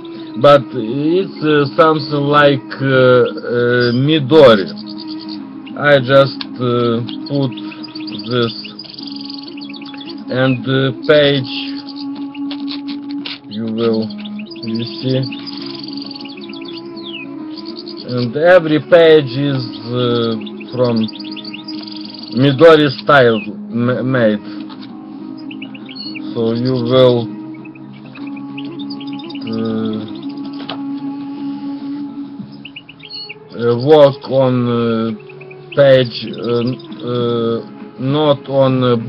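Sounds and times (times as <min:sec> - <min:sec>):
small birds chirping: 0:00.0 - 0:39.0.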